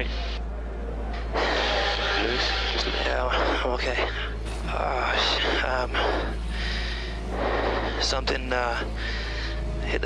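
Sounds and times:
voice over radio: 0:00.0 - 0:00.4, 0:01.4 - 0:10.0
radio hiss: 0:00.0 - 0:00.5, 0:01.2 - 0:10.0
low hum: 0:00.0 - 0:10.0.

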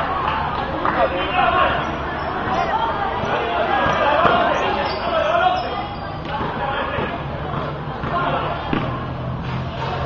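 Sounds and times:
voices calling and chattering: 0:00.0 - 0:10.0.

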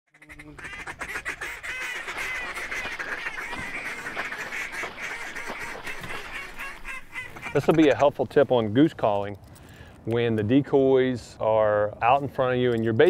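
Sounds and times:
geese honking: 0:00.1 - 0:08.2.

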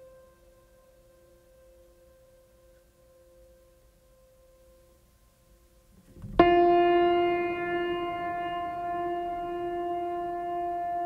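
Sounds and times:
music holding long note: 0:06.0 - 0:11.0.

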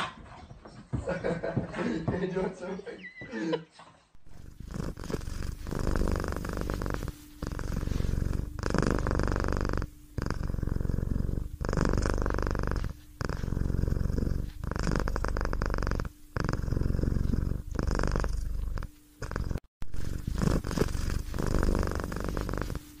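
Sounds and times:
cat purring: 0:04.2 - 0:23.0.

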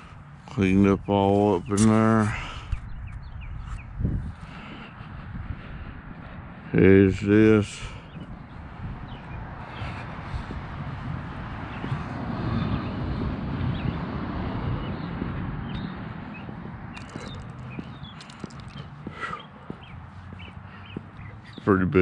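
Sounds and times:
footsteps on asphalt: 0:00.0 - 0:22.0
wind on microphone: 0:01.6 - 0:19.2.

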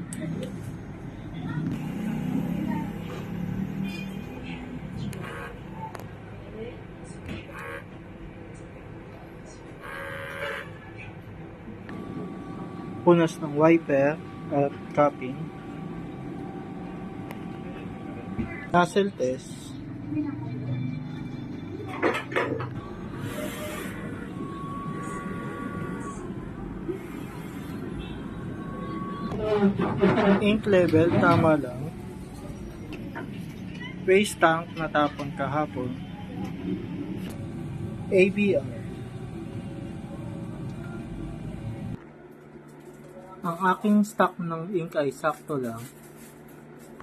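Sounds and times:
printer mechanical hum: 0:00.0 - 0:47.0.

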